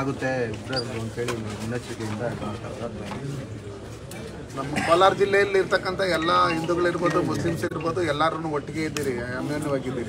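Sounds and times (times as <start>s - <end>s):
background talk: 0.0s - 10.0s.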